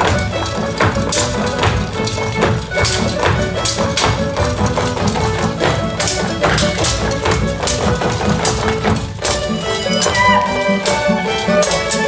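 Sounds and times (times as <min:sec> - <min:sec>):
dancers' percussive taps: 0:00.0 - 0:12.0
folk dance music: 0:00.0 - 0:12.0.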